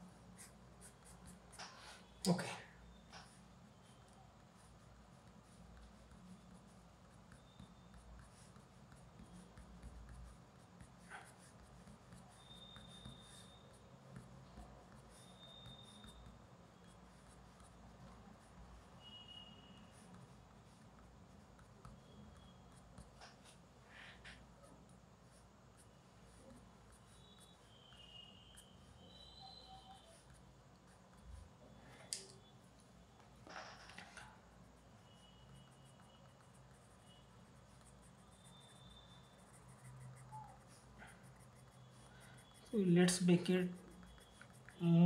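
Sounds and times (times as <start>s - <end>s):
pencil scratching on paper: 0.0s - 2.3s, 2.9s - 31.8s, 32.4s - 45.0s
faint high steady tone: 0.0s - 45.0s.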